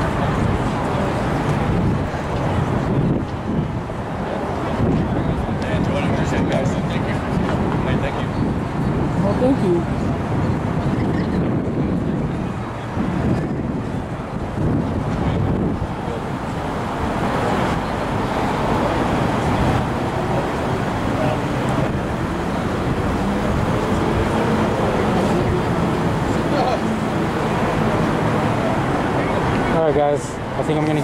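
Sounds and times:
road traffic: 0:00.0 - 0:31.0
voices of people: 0:00.0 - 0:31.0.

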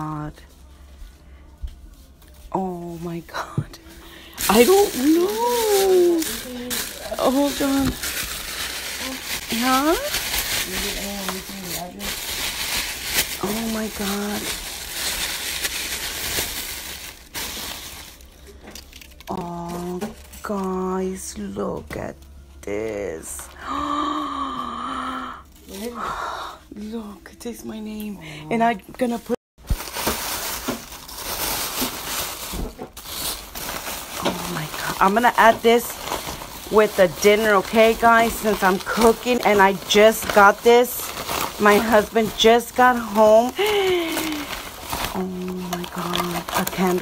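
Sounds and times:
plastic and tissue paper rustling: 0:00.0 - 0:20.9, 0:25.6 - 0:26.0, 0:29.0 - 0:47.0.

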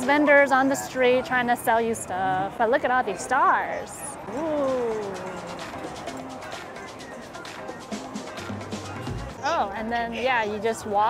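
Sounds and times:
busy street background: 0:00.0 - 0:11.0
faint music: 0:00.0 - 0:11.0.

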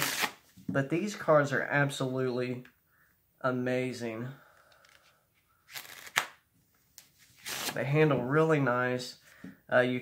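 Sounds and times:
cards snapping: 0:05.7 - 0:06.4
playing cards riffle-shuffled: 0:05.7 - 0:07.8.

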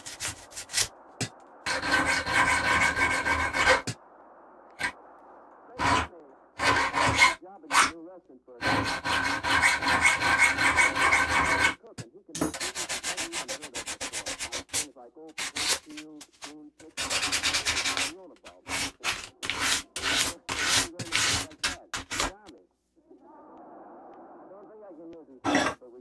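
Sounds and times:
needle file scraping metal: 0:00.0 - 0:00.9, 0:01.7 - 0:03.9, 0:05.8 - 0:08.0, 0:08.6 - 0:11.8, 0:12.4 - 0:22.4.

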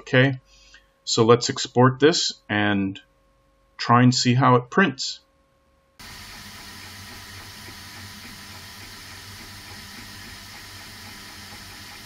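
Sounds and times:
printer fans and motors whirring: 0:06.0 - 0:12.0.

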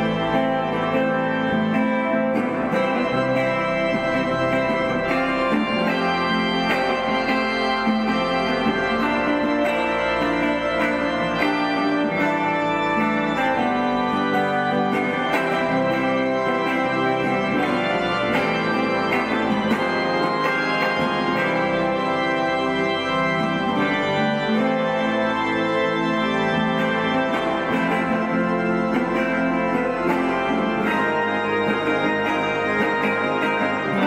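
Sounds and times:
church organ chords: 0:00.0 - 0:34.0
electric guitar picking notes: 0:00.0 - 0:34.0.

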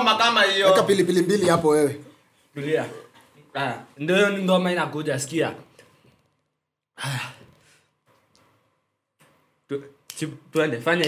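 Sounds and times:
person sighing: 0:07.0 - 0:07.8.

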